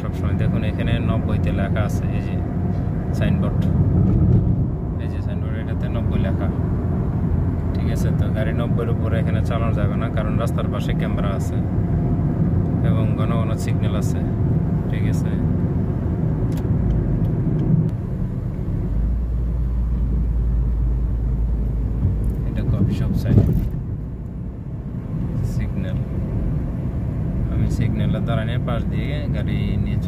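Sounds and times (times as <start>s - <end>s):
low rumble of road and engine: 0.0s - 30.0s
loud thump: 3.9s - 4.7s.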